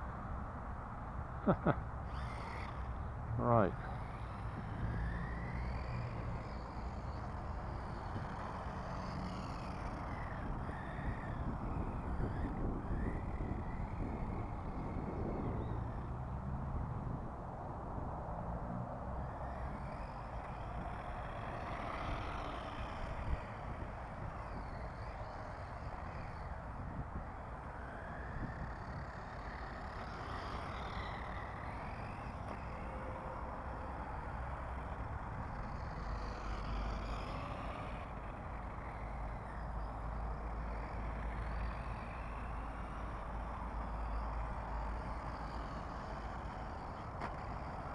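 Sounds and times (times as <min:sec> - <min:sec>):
rc car driving on concrete: 0:00.0 - 0:47.9
wind on microphone: 0:10.0 - 0:18.4.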